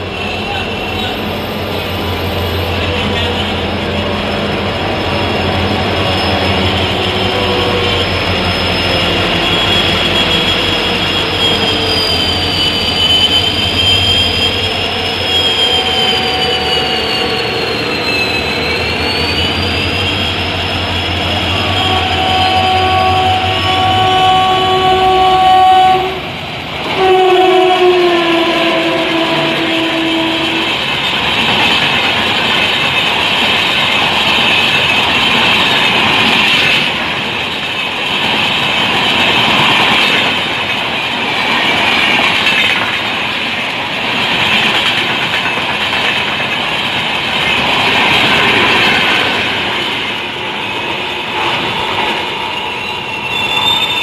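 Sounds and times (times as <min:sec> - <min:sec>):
train wheels rumbling and rattling: 0:00.0 - 0:54.0
train horn blasts: 0:21.2 - 0:30.8.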